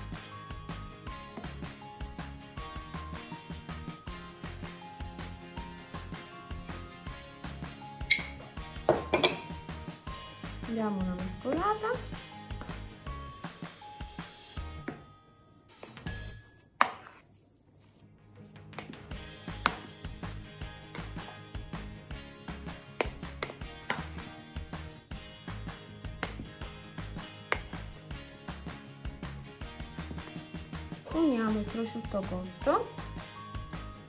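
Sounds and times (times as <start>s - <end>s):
background music: 0.0s - 34.0s
metal spoon scraping a bowl: 16.2s - 17.3s.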